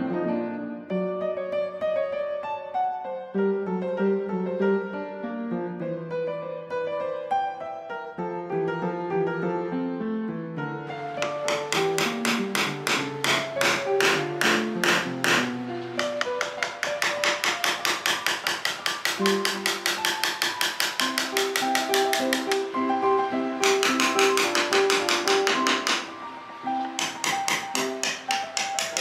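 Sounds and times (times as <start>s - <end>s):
music with struck notes and beat: 11.2s - 29.0s.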